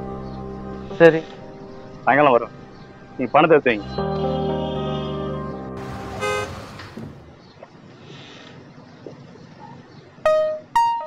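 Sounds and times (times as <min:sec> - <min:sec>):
car horn toot: 0:05.8 - 0:07.1
car driving past: 0:05.8 - 0:07.7.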